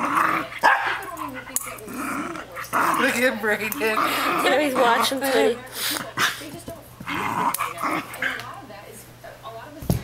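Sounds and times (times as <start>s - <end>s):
dog growling playfully: 0.0s - 6.4s, 7.0s - 8.4s.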